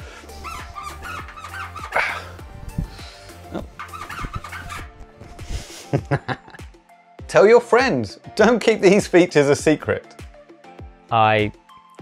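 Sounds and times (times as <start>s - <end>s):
background music: 0.0s - 12.0s
short high squeaky blips: 3.8s - 4.9s.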